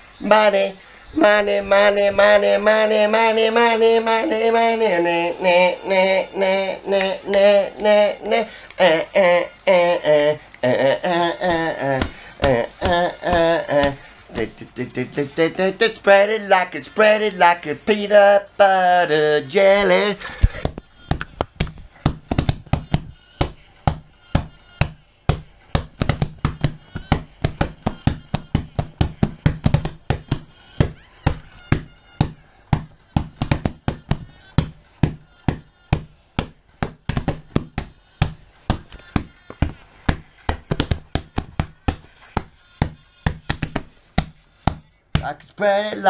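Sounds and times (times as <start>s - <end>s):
hand slapping padded leather: 20.6s - 45.3s.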